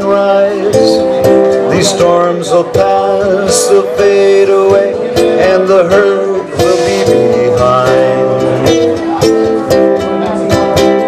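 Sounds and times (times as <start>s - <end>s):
person singing: 0.0s - 11.0s
ukulele strumming: 0.0s - 11.0s.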